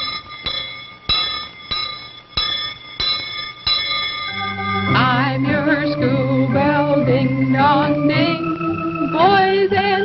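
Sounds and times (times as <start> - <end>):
hand bell clanging: 0.0 - 5.3.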